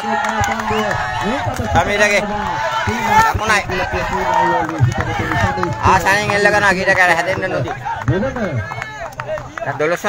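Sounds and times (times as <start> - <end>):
man commentating: 0.0 - 10.0.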